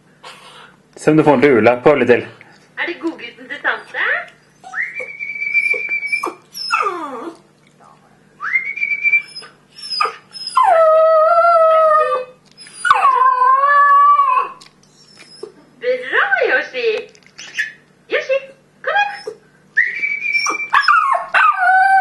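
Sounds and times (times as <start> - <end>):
dog whining: 3.7 - 7.5, 8.4 - 15.8, 17.4 - 17.8, 18.9 - 22.0
dog howling: 4.6 - 7.4, 8.6 - 15.6, 19.0 - 22.0.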